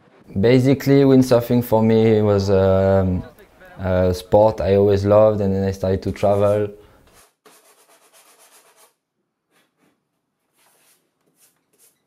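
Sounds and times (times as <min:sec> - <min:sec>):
sandpaper rubbing back and forth: 0:06.1 - 0:09.0, 0:10.6 - 0:12.0.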